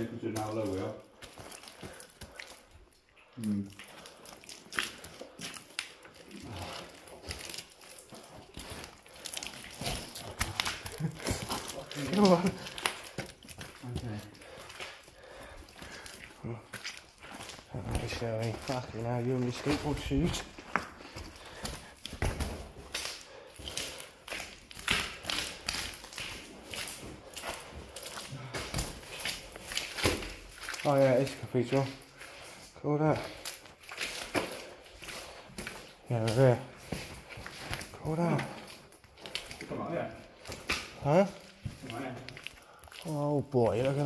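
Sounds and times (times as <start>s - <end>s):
footsteps on loose dirt and rubble: 0.0s - 2.9s, 3.8s - 44.0s
clothing and gear rustling: 3.8s - 44.0s.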